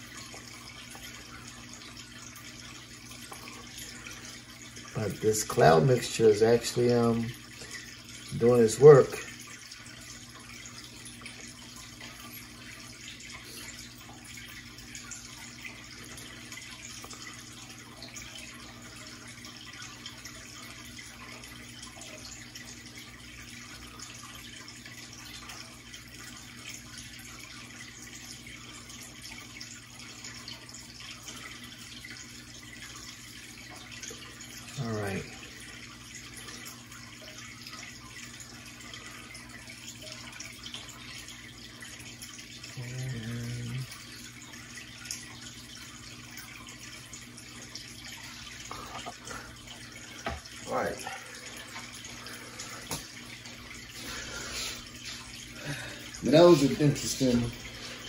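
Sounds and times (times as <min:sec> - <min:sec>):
aquarium water trickling: 0:00.0 - 0:58.0
short hum-like vocal sound: 0:42.7 - 0:44.1, 0:53.9 - 0:58.0.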